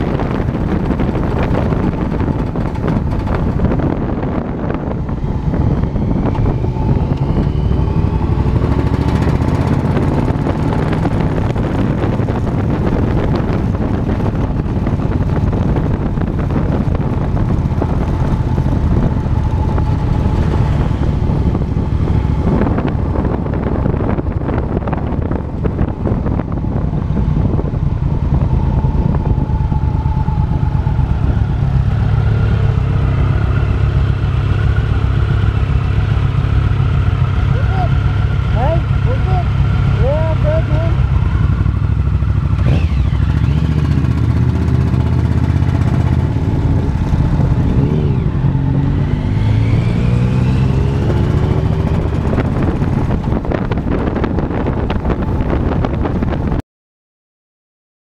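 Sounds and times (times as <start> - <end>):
motorcycle engine running: 0.0 - 56.6.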